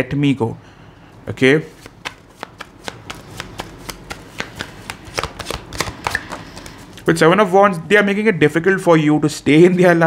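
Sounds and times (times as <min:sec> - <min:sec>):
cards being shuffled: 0:01.7 - 0:07.1.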